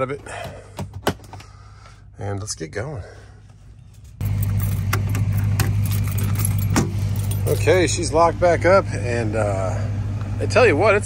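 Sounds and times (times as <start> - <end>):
engine idling: 3.3 - 11.0
keys jingling in door lock: 4.2 - 7.9.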